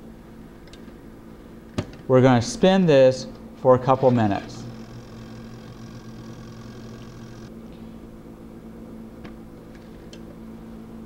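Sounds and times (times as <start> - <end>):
centrifuge humming: 4.2 - 7.5.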